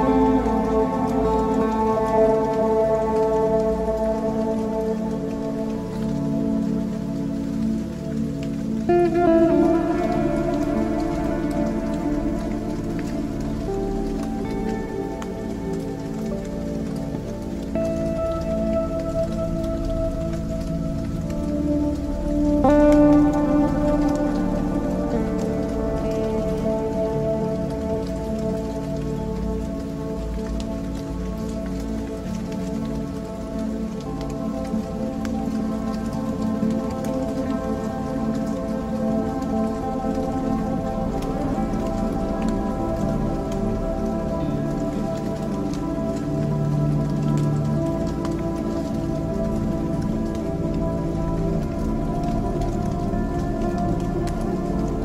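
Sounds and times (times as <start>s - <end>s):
ambient music held chords: 0.0s - 55.0s
rain-like patter: 0.0s - 55.0s.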